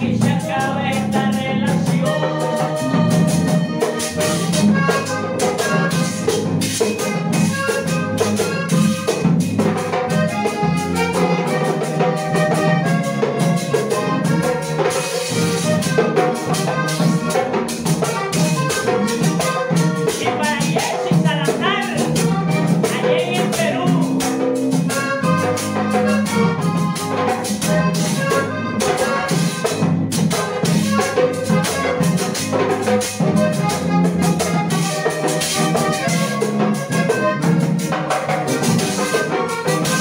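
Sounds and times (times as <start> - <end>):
button accordion melody: 0.0 - 40.0
electric bass line: 0.0 - 40.0
hand drum: 0.0 - 40.0.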